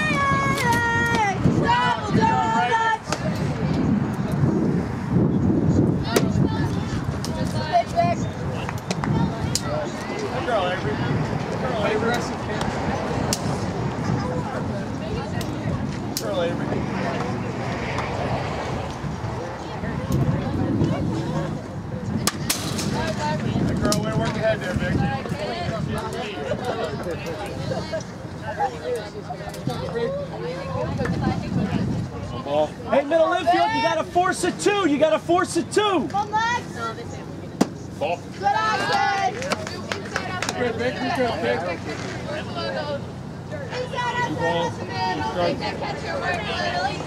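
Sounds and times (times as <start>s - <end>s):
people calling out: 0.0s - 3.2s, 38.1s - 47.0s
background chatter: 0.0s - 47.0s.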